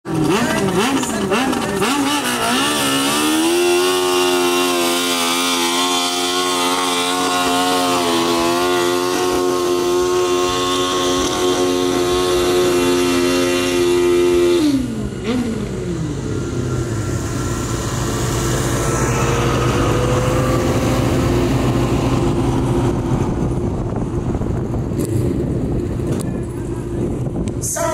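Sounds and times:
engine revving under load: 0.0 - 27.6.

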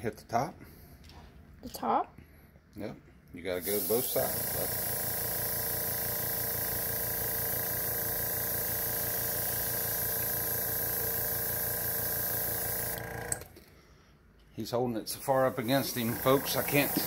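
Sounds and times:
airbrush hissing: 3.6 - 13.0, 15.2 - 17.0
motor hum: 3.8 - 13.6, 15.3 - 17.0.

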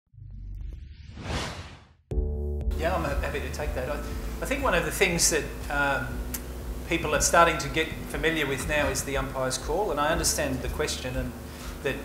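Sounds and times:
low rumble: 0.1 - 10.3
rushing swoosh: 1.1 - 2.0.

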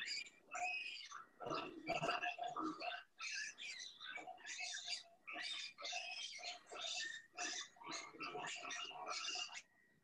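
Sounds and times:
piglets squealing: 0.0 - 9.7.

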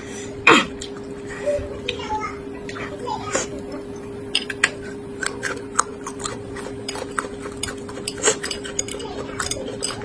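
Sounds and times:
woman clearing throat: 0.4 - 0.8.

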